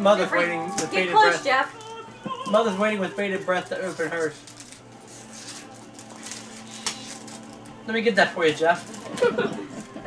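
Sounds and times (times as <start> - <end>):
wrapping paper rustling and crinkling: 2.7 - 7.8.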